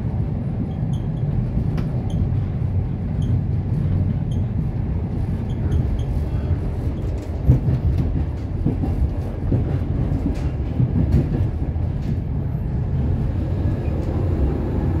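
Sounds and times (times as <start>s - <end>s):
train wheels rumbling on track: 0.0s - 15.0s.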